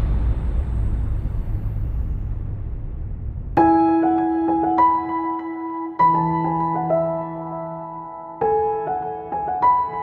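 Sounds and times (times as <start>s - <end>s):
cinematic boom rumble: 0.0s - 4.6s
soft piano music: 3.6s - 10.0s.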